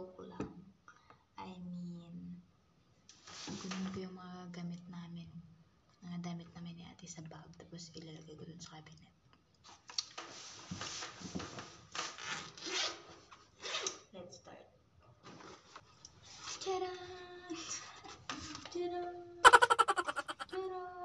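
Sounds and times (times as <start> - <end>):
soft voice holding tones: 19.4 - 20.6.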